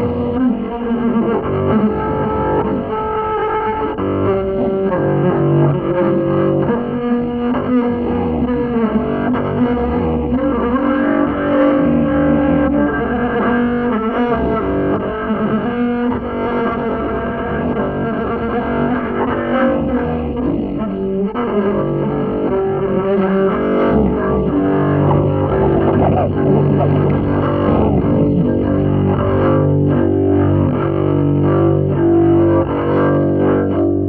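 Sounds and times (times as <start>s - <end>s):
double bass held tones: 17.0s - 34.0s.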